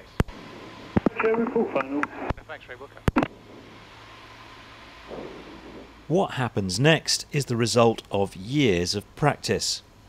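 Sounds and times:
airplane cabin engine hiss: 0.0s - 10.0s.

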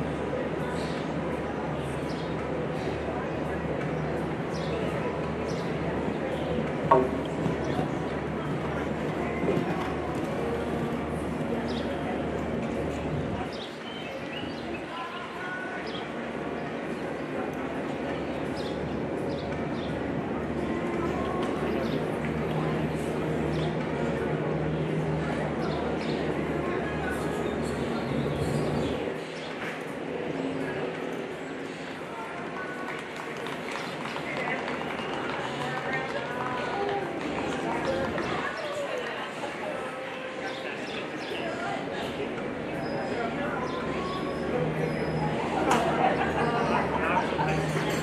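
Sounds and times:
background murmur: 0.0s - 48.0s
chatter of voices: 0.0s - 48.0s.

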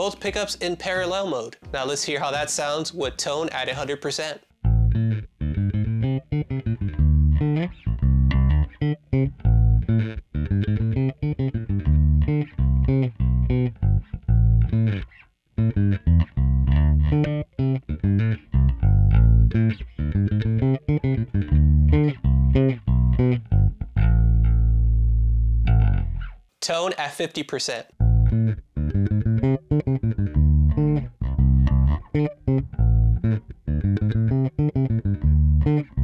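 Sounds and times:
electric bass plucked notes: 0.0s - 3.4s, 4.6s - 26.5s, 28.0s - 36.0s.

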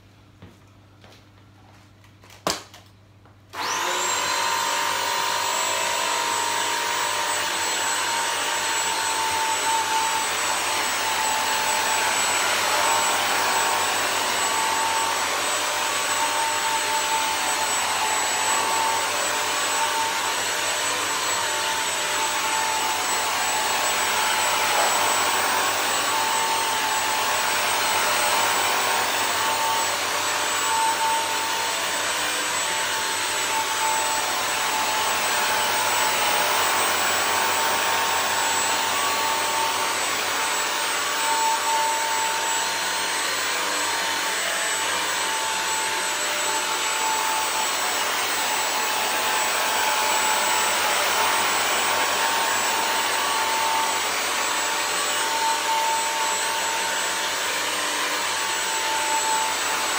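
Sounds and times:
floor cleaner motor whining: 3.5s - 59.9s.

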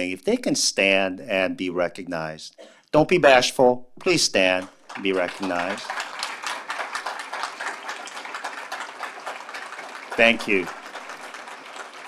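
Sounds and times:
audience applauding: 3.2s - 12.0s.

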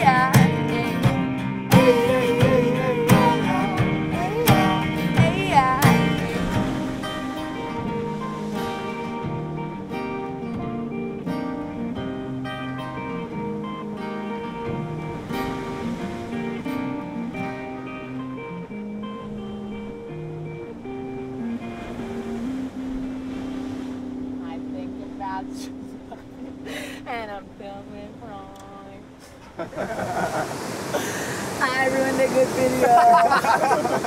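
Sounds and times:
guitars strumming chords: 0.0s - 29.2s.

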